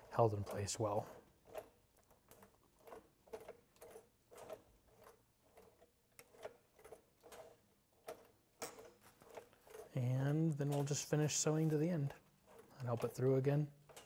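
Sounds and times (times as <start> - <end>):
sewing machine mechanical clicks: 0.0 - 14.0.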